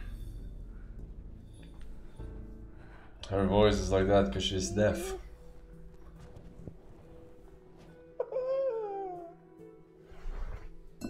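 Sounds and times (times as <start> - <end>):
young man whimpering: 4.4 - 5.3.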